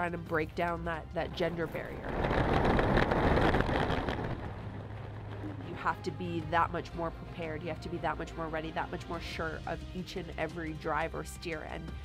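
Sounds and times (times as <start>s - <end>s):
air rushing past microphone: 1.3s - 7.1s
runners scraping on ice: 1.8s - 5.8s.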